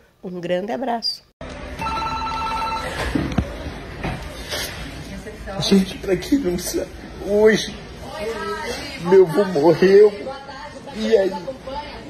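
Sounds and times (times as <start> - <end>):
trilling electronic ring: 1.8 - 3.0.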